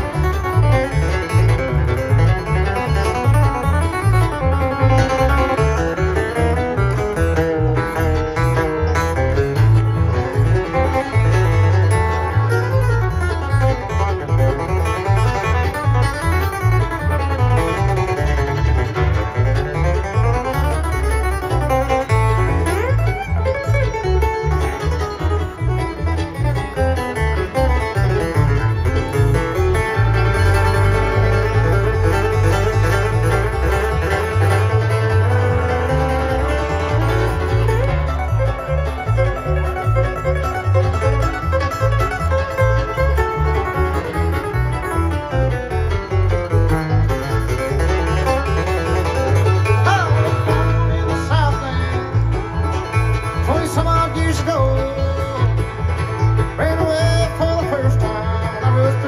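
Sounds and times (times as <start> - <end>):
banjo: 0.0 - 59.0
picked acoustic guitar: 0.0 - 59.0
pulsing bass: 0.0 - 59.0.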